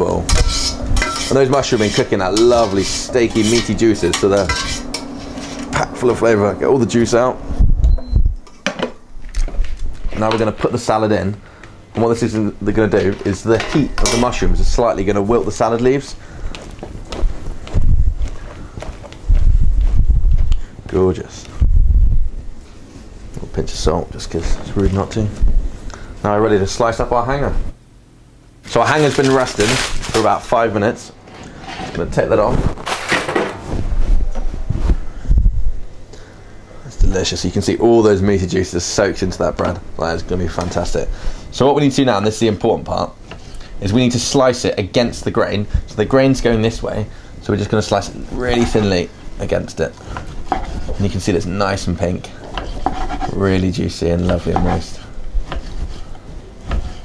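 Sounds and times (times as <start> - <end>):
kitchenware clicking and clattering: 0.2 - 5.8, 13.0 - 14.4, 32.8 - 33.6.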